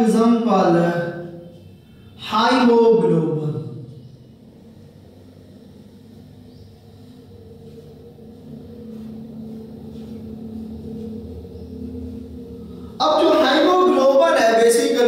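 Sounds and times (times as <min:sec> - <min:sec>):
faint droning tones: 0:00.0 - 0:15.0
low steady hum and rumble: 0:03.1 - 0:15.0.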